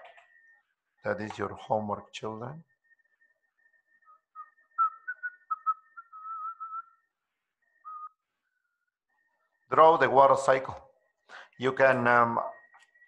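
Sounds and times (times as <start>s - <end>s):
man whistling softly: 3.6s - 7.1s, 7.7s - 8.2s.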